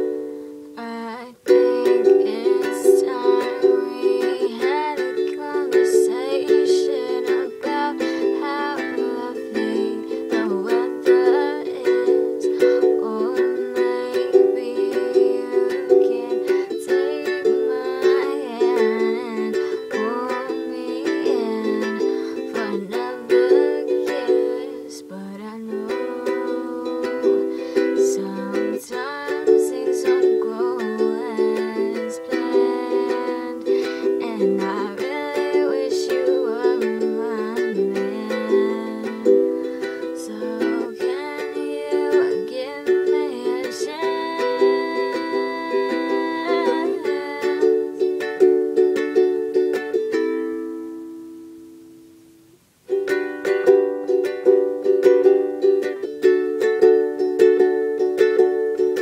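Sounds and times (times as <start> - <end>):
woman singing: 0.0 - 50.0, 53.0 - 59.0
ukulele strumming chords: 0.0 - 59.0.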